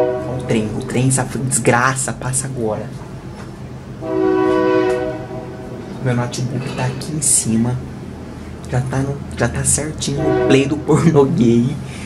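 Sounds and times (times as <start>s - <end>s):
train horn blast: 0.0s - 1.5s, 4.0s - 7.0s, 10.0s - 11.2s.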